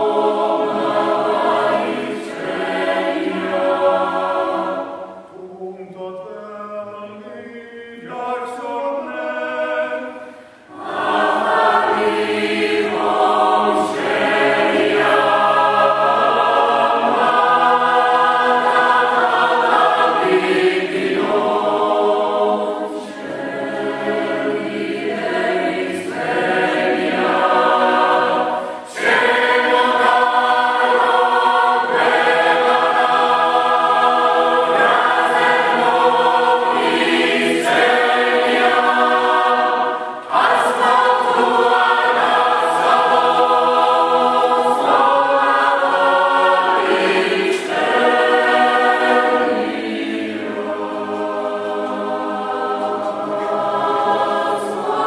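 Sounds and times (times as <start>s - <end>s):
mixed choir singing a cappella: 0.0s - 55.0s.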